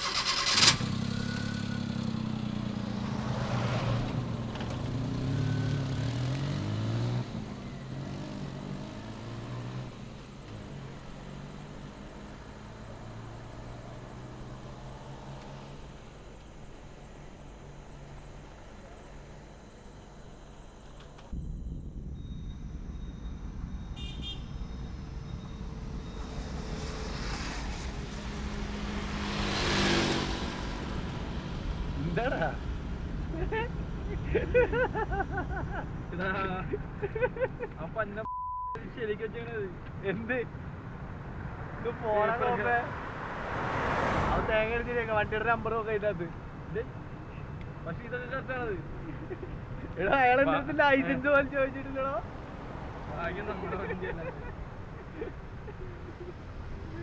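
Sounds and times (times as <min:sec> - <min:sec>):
van engine revving: 0:00.0 - 0:19.4, 0:25.4 - 0:33.0
low road rumble: 0:00.0 - 0:57.0.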